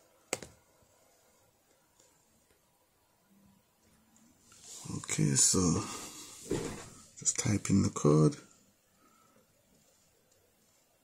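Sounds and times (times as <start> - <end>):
man speaking: 4.8 - 6.2, 7.2 - 8.5.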